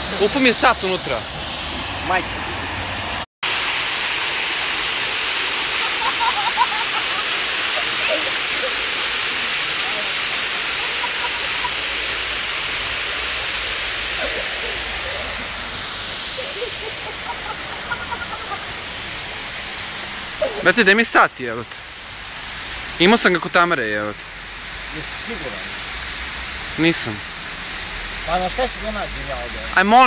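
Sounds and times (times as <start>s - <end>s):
fountain water splashing: 0.0s - 30.0s.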